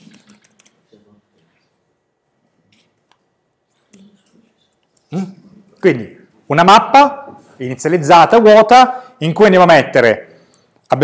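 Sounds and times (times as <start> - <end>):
keyboard typing: 0.0 - 0.8.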